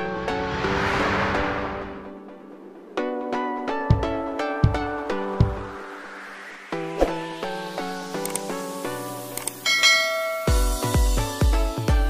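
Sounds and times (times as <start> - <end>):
light background music: 0.0 - 12.0
bright ringing bell chime: 9.6 - 11.0
electronic dance beat with heavy bass: 10.5 - 12.0.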